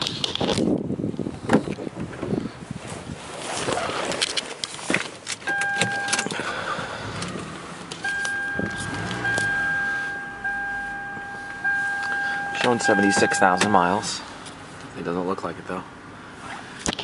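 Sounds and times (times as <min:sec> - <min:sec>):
car electronic warning chime: 0:05.5 - 0:06.4, 0:08.0 - 0:14.2.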